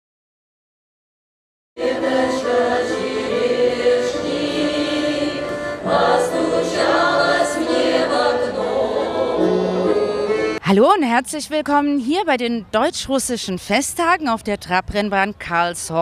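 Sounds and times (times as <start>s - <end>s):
accordion: 1.8s - 10.6s
folk choir singing: 1.8s - 10.6s.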